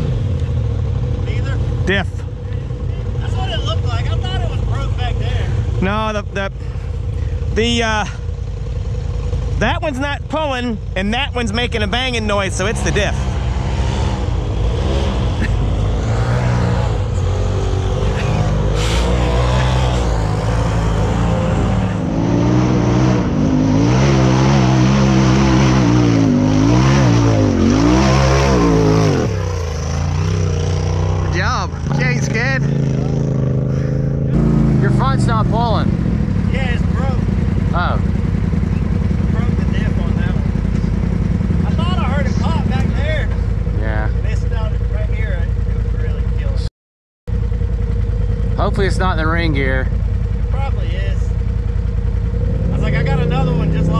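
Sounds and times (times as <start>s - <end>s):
engine idling: 0.0s - 46.7s, 47.3s - 53.9s
engine revving hard: 9.6s - 45.4s, 48.6s - 49.9s, 52.5s - 53.9s.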